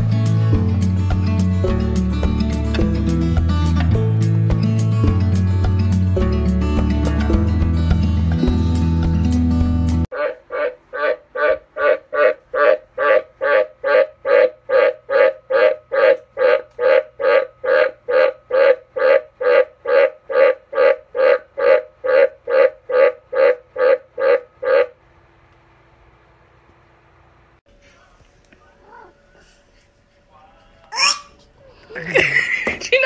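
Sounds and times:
tree frog croaking: 0:10.1 - 0:25.0.

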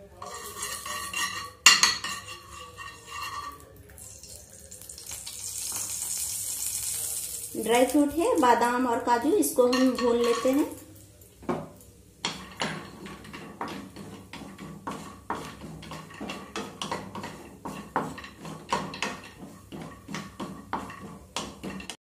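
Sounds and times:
spatula knocking and scraping pan: 0:00.2 - 0:03.6, 0:09.1 - 0:10.7, 0:11.4 - 0:22.0.

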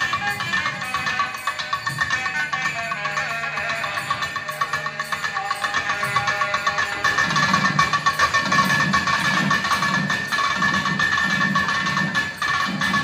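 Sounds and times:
reedy wind instruments: 0:00.0 - 0:10.5
drums playing quick rhythm: 0:00.0 - 0:13.0.

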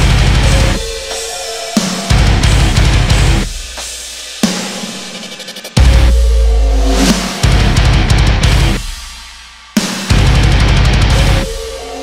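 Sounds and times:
heavy full-band hit: 0:00.0 - 0:01.1, 0:05.8 - 0:11.9
drum and cymbal accent: 0:00.0 - 0:12.0.

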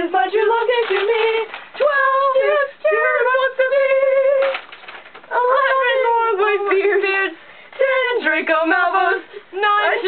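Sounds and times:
girls singing a long note: 0:05.3 - 0:10.0.

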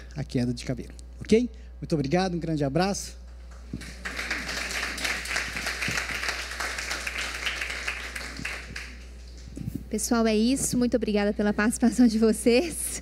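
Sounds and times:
audience applauding: 0:03.5 - 0:09.5.

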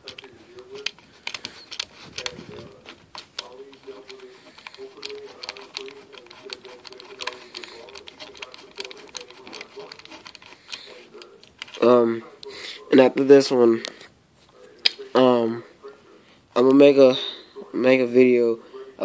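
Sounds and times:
connector screwing clicks: 0:00.0 - 0:12.5.

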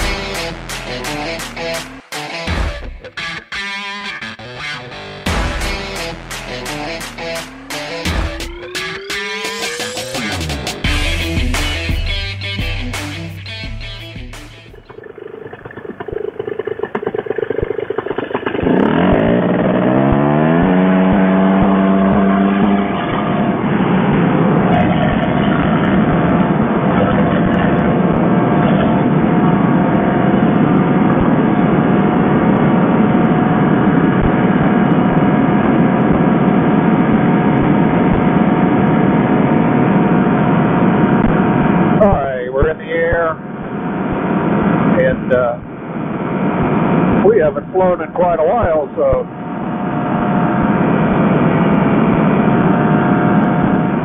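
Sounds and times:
paramotor engine at full power: 0:15.1 - 0:42.1, 0:48.4 - 0:54.0.

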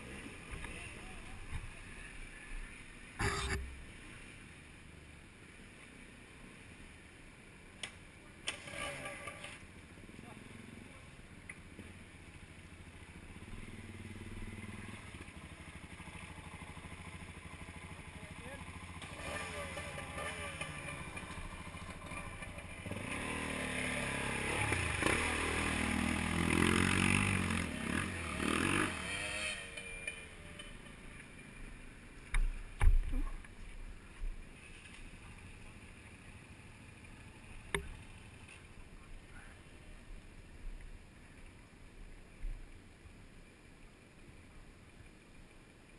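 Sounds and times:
motorcycle engines revving: 0:00.0 - 0:04.5, 0:08.4 - 0:33.2.

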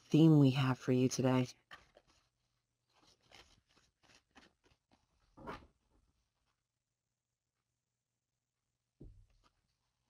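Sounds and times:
cards being shuffled: 0:01.6 - 0:05.7.

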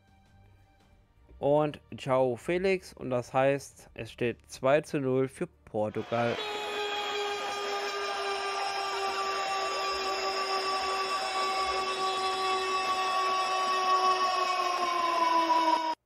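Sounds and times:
long horn-like tone: 0:06.3 - 0:16.0.

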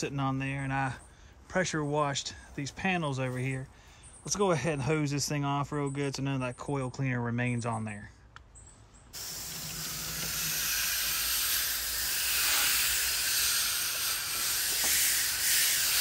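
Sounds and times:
hose spraying water on metal coil: 0:09.2 - 0:16.0.

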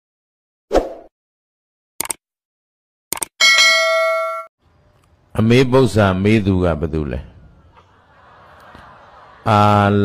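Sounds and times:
notification bell ding: 0:03.4 - 0:04.5.

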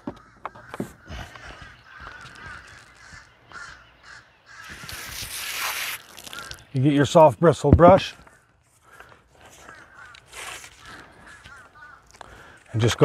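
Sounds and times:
distant crows cawing: 0:00.0 - 0:13.0
loud steady hiss: 0:04.7 - 0:06.0.

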